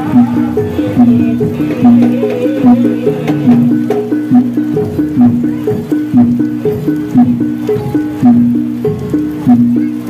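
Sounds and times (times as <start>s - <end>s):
dance accompaniment music: 0.0s - 9.9s.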